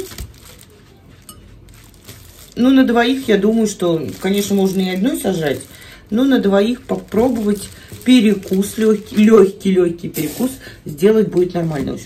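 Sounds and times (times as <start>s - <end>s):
plastic wrap handling sounds: 0.0s - 12.0s.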